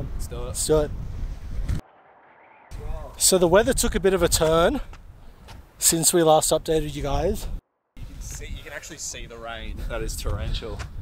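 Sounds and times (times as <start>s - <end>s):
wind buffeting microphone: 0.0s - 1.9s, 2.7s - 5.8s, 6.4s - 11.0s.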